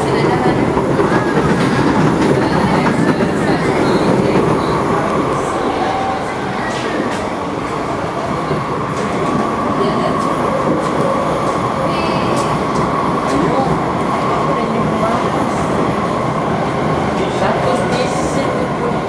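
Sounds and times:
train wheels rumbling on rail: 0.0s - 19.0s.

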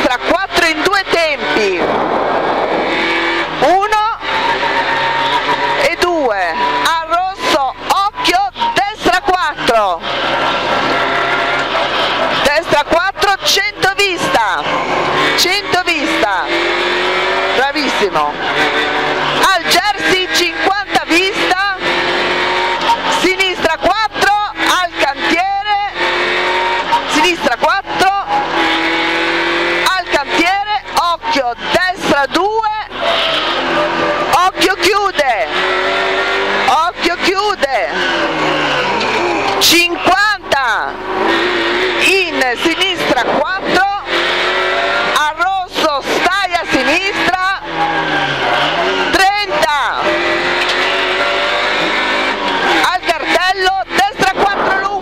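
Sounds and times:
car engine revving: 0.0s - 55.0s
road and tyre noise: 0.0s - 55.0s.

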